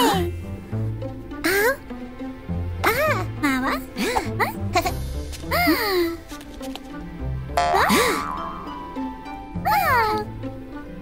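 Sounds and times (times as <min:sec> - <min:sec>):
cartoon background music: 0:00.0 - 0:11.0.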